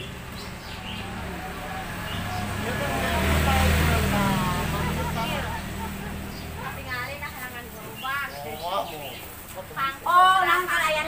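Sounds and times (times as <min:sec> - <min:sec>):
motorcycle passing by: 0:00.0 - 0:10.9
people talking: 0:00.8 - 0:11.0.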